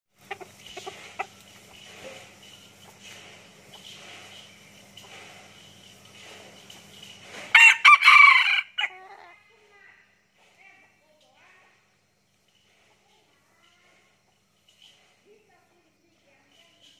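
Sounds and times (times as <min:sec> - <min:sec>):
rooster crowing: 0:07.5 - 0:09.3.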